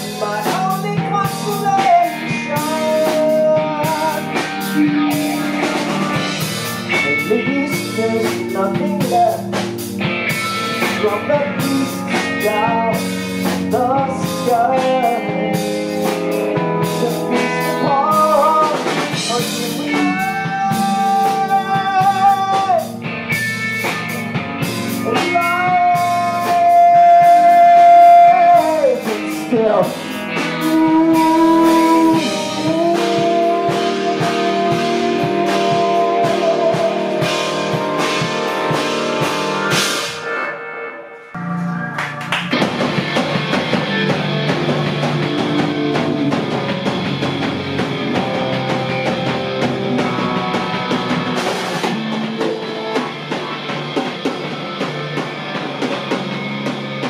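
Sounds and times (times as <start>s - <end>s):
bending guitar lead notes: 0.0s - 57.0s
blues-rock band playing: 0.0s - 57.0s.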